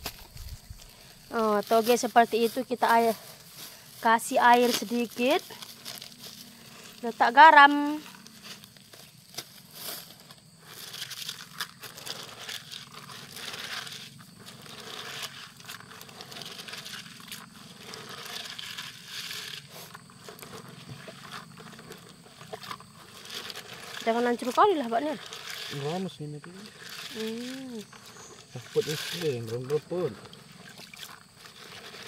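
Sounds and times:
hands squeezing bean sprouts: 0:10.6 - 0:32.0.

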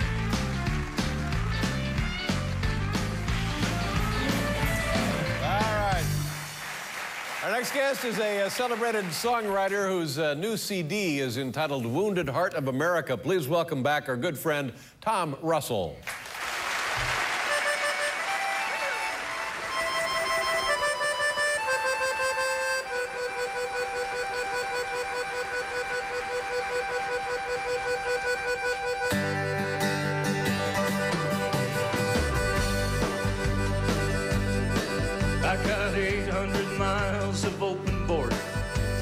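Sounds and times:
country band playing: 0:00.0 - 0:06.6, 0:17.5 - 0:39.0
accordion melody: 0:00.0 - 0:06.8, 0:17.4 - 0:39.0.

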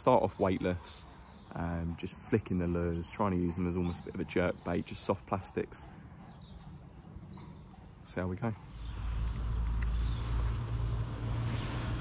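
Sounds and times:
low outdoor rumble: 0:06.0 - 0:12.0.

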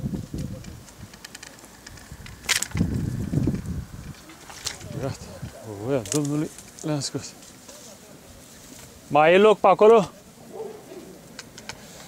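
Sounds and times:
dry reeds rustling and crackling: 0:00.0 - 0:12.0.

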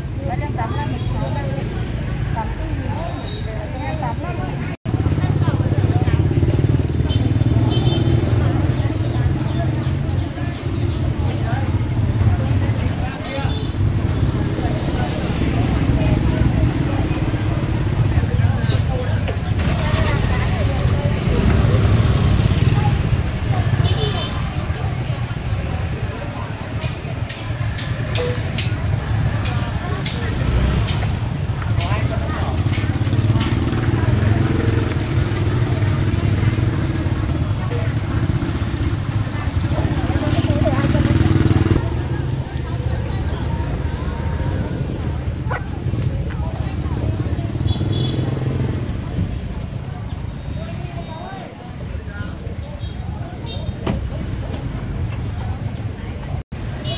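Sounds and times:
chatter of vendors and shoppers: 0:00.0 - 0:56.9
motorbikes rumbling past: 0:00.0 - 0:56.9.

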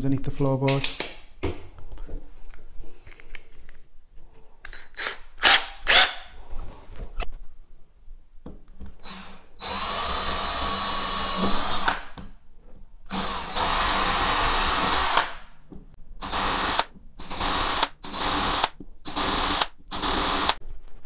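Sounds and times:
cordless drill boring into wood: 0:05.4 - 0:06.2, 0:09.0 - 0:12.1, 0:13.1 - 0:15.4, 0:16.2 - 0:20.6.

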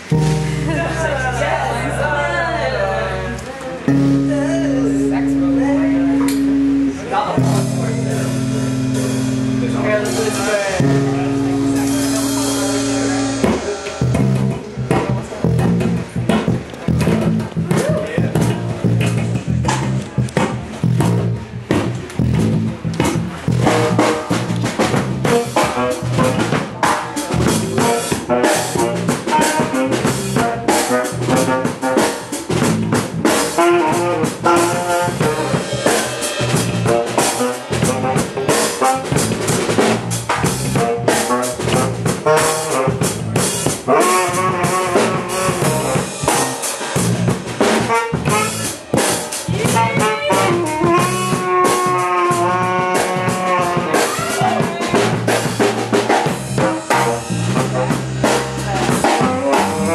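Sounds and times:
drum kit beat: 0:00.0 - 0:02.7, 0:03.8 - 0:59.9
electric bass: 0:00.0 - 0:59.9
trumpet playing melody: 0:25.2 - 0:40.0, 0:40.7 - 0:47.0, 0:47.7 - 0:55.0, 0:56.5 - 0:59.9.

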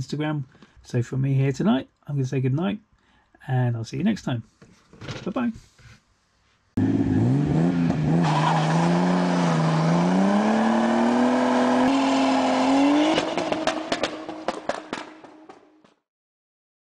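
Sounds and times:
car engine revving: 0:06.8 - 0:15.6
engine crackles: 0:06.8 - 0:15.9.

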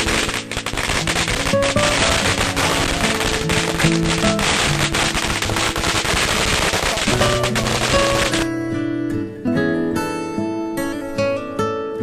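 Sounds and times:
firecrackers popping: 0:00.0 - 0:08.5
music playing: 0:00.0 - 0:12.0.

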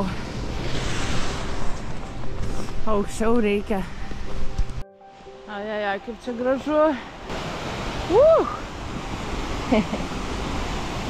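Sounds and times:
steady rushing noise: 0:00.0 - 0:04.8
footsteps crunching in snow: 0:00.3 - 0:04.8.

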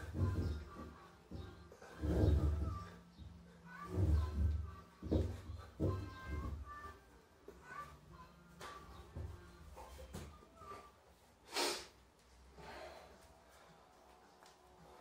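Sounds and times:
faint background music: 0:00.0 - 0:15.0.

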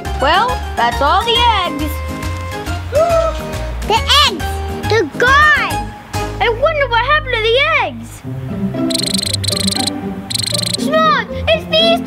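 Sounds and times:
background music: 0:00.0 - 0:12.0
high rapid chirping trill: 0:08.9 - 0:10.8.

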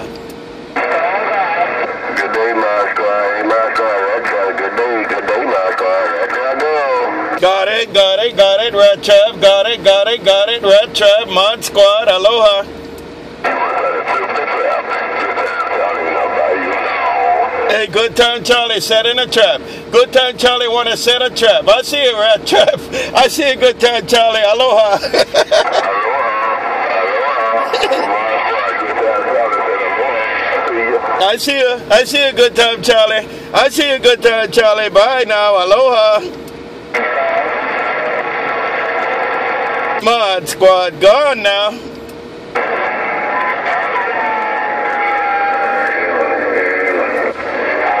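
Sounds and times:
voice over radio speaker: 0:00.7 - 0:12.7, 0:13.4 - 0:41.9, 0:42.6 - 0:48.0
radio static: 0:00.7 - 0:12.8, 0:13.4 - 0:36.3, 0:36.9 - 0:41.9, 0:42.5 - 0:48.0.

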